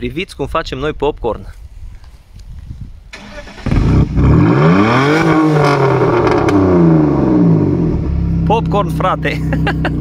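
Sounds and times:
exhaust cracks: 3.1 - 9.3
car engine revving: 3.2 - 9.2.

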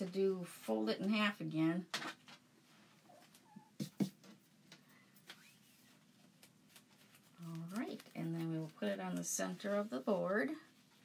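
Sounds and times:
woman speaking: 0.0 - 1.9, 7.4 - 10.7.

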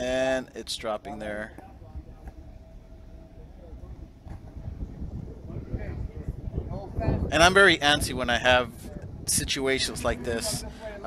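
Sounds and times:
wind buffeting microphone: 0.7 - 11.0.

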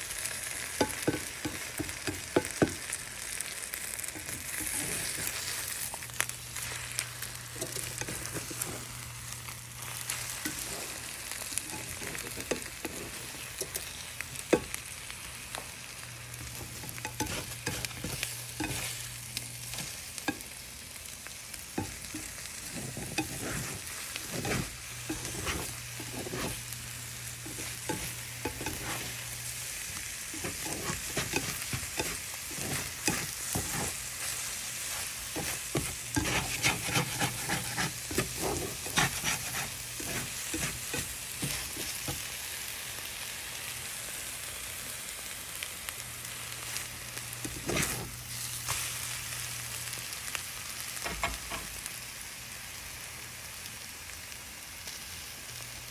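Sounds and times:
food sizzling in a frying pan: 0.0 - 55.9
plastic spatula scraping a pan: 16.4 - 19.0, 21.8 - 26.7, 27.4 - 29.2, 30.3 - 42.2, 47.4 - 48.2.

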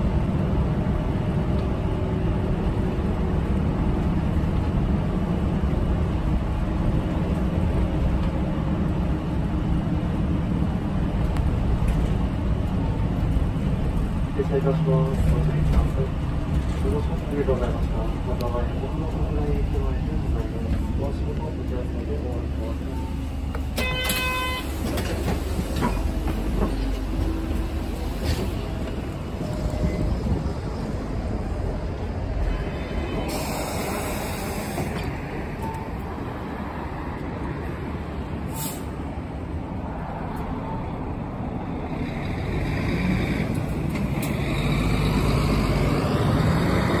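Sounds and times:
bus engine running: 0.0 - 47.0
air hissing bursts: 33.3 - 35.0.

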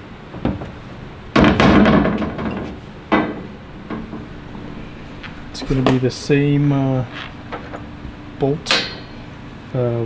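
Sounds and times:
metal hardware clattering: 8.6 - 9.3.

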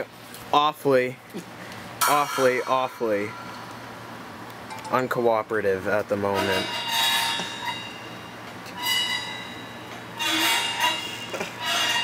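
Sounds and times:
cymbal scraped with drumstick: 6.3 - 12.0.

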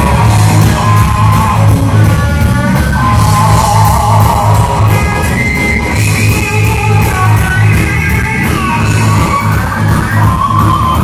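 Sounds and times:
electric bass: 0.0 - 11.0
electric guitar lead: 0.0 - 11.0
steady drum beat: 0.0 - 11.0.

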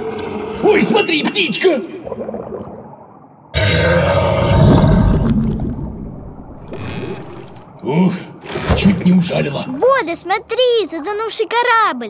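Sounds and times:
cartoon deep growl roar: 3.6 - 5.2.

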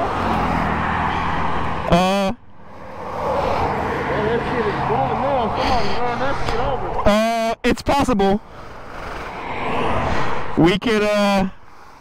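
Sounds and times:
highway traffic rushing: 0.0 - 12.0
short voice sound: 1.9 - 2.4.

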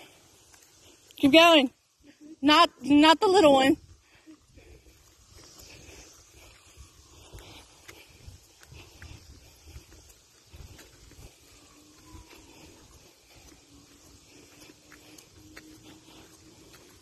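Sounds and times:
footsteps on paved road: 0.0 - 17.0
wind rumbling on microphone: 3.8 - 13.4.

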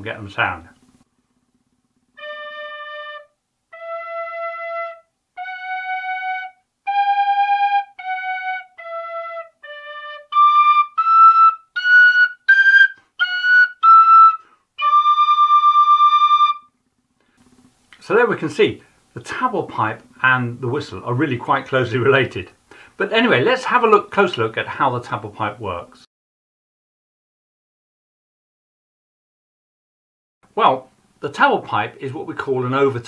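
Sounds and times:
pipe and tin whistle in unison: 2.2 - 16.7.

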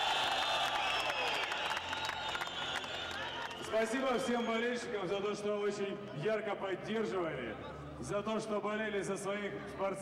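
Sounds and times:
crowd cheering: 0.0 - 4.5
applause: 0.0 - 4.6.

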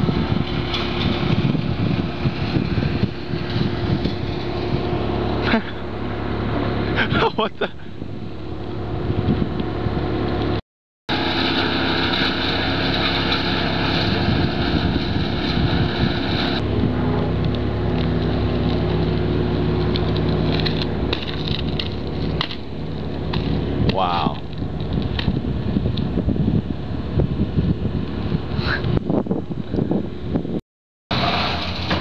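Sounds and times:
wind noise on microphone: 0.0 - 5.6, 6.3 - 10.6, 13.4 - 30.6
high whine: 0.0 - 32.0
motor engine running: 0.0 - 32.0.

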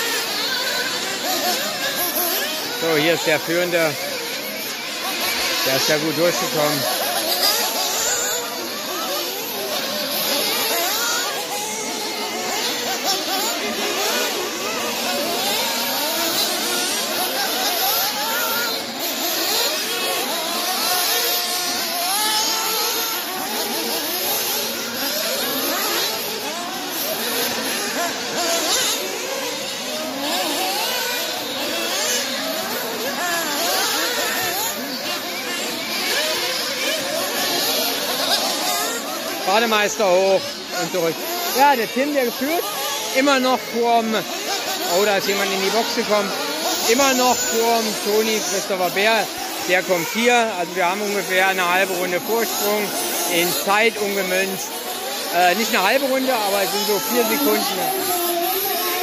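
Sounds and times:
small model car engines whining: 0.0 - 59.0.

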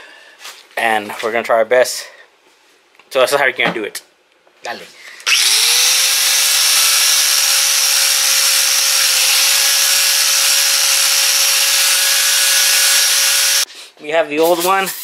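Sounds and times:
angle grinder grinding metal: 5.2 - 13.7.

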